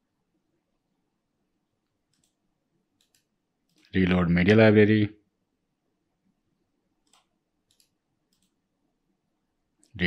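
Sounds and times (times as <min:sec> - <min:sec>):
computer mouse clicks: 0:01.8 - 0:04.0, 0:07.0 - 0:08.6.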